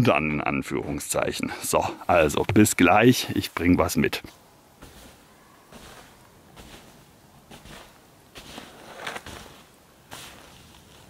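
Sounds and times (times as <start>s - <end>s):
footsteps in snow: 3.4s - 11.0s.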